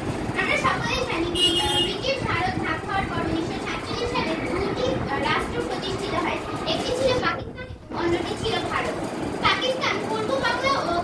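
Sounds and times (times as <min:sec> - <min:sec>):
girls talking: 0:00.2 - 0:11.0.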